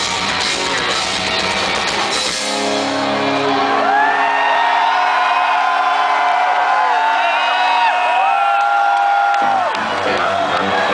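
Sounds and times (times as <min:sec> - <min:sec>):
crowd cheering and whooping: 0:03.0 - 0:10.9.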